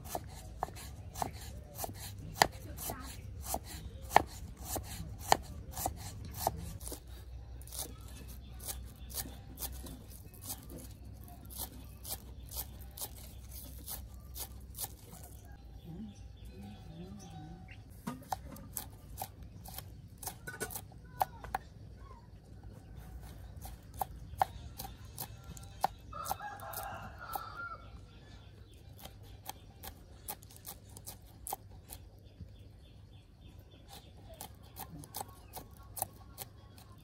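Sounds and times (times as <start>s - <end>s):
knife chopping on wooden board: 0.0s - 7.0s, 33.9s - 36.5s
rooster crowing: 26.1s - 27.9s.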